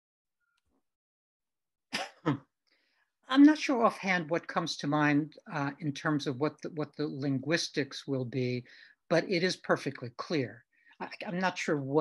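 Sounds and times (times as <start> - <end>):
man coughing: 1.9 - 2.4.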